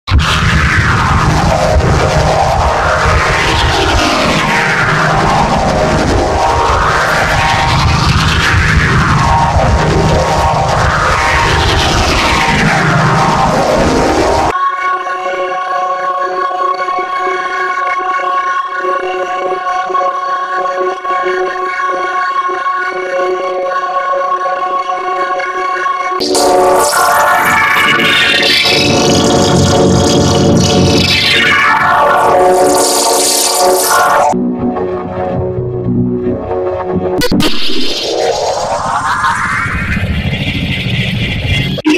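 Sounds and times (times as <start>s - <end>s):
rising pitch sweep: 0.1s - 14.5s, 26.2s - 41.9s
warped electronic jingle: 0.2s - 14.5s, 26.2s - 41.9s.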